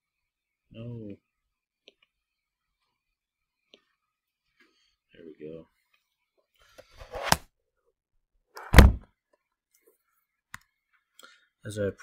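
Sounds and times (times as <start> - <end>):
deep thud: 8.7 - 9.0.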